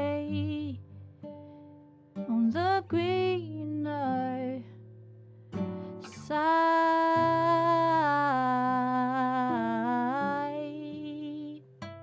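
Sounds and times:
classical guitar: 0.0 - 12.0.

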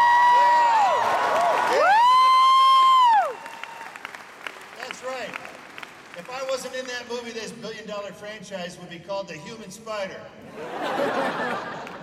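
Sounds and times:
high-pitched vocal whoop: 0.0 - 3.9
audience applause: 0.0 - 7.1.

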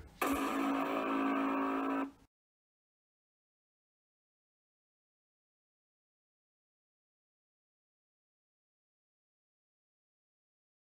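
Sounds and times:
buzzing tone: 0.2 - 2.2.

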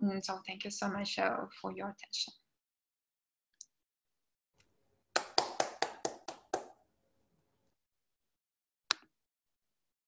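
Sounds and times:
person clapping: 5.1 - 6.8.

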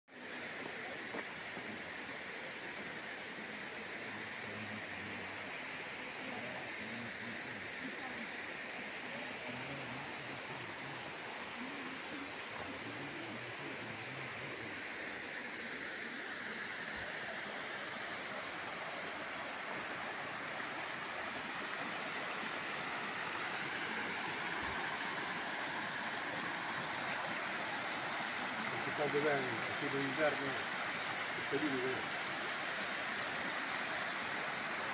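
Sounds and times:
waterfall rushing: 0.2 - 34.9.

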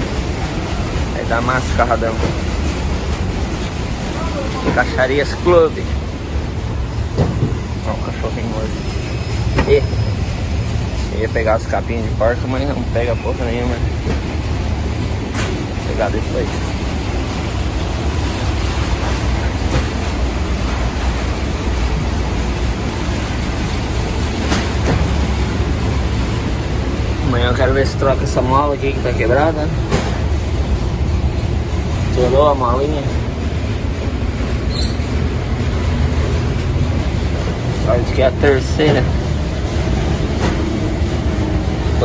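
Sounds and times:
diesel truck engine idling: 0.0 - 42.0
low mechanical rumble: 0.0 - 42.0.

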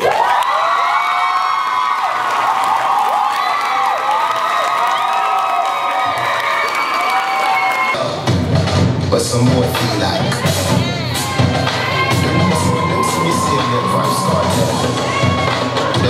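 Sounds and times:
audience cheering and shouting: 0.0 - 8.5, 9.2 - 16.0.

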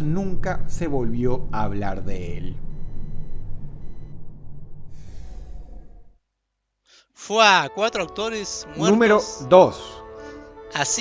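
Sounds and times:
low rumbling drone: 0.0 - 6.2.

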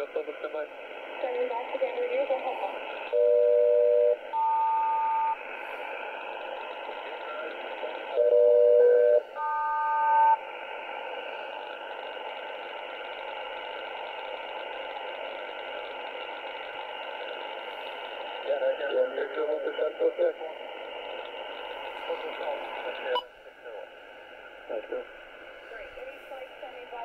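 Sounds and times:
two-tone radio chords: 0.0 - 15.0
shortwave static hiss: 0.0 - 27.0.

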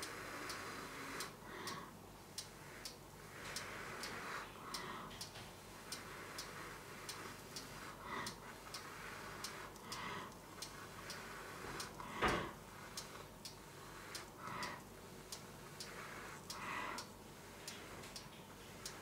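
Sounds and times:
clock ticking: 0.0 - 19.0.

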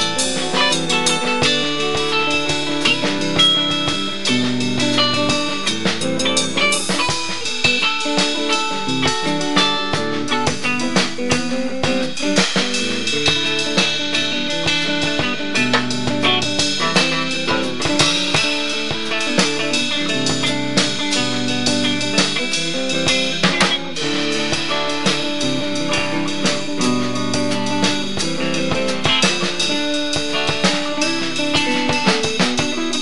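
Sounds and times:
drum kit beat: 0.0 - 33.0
electric guitar: 0.0 - 33.0.

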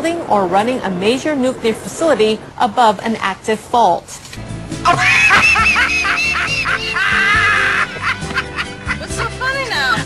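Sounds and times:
music: 4.4 - 10.0
person laughing in high whoops: 4.9 - 9.0.

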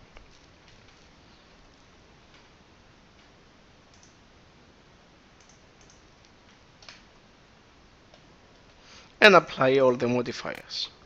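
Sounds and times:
computer mouse and keyboard clicks: 3.9 - 4.2, 5.4 - 7.1.

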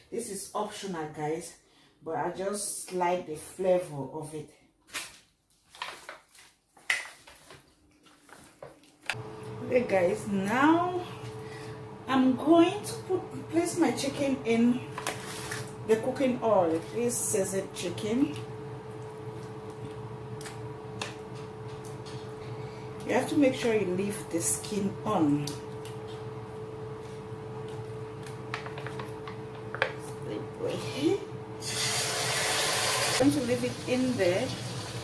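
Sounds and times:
foil tray crinkling: 5.0 - 9.0
steady background hum: 7.5 - 35.0.

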